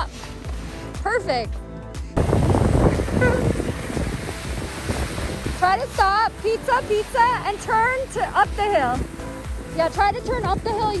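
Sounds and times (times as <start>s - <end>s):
skis scraping on snow: 0.0s - 1.3s
wind on microphone: 2.2s - 6.9s, 8.5s - 11.0s.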